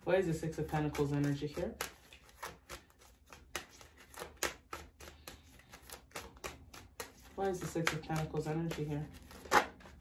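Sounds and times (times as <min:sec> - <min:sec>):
cards being shuffled: 0:00.1 - 0:10.0.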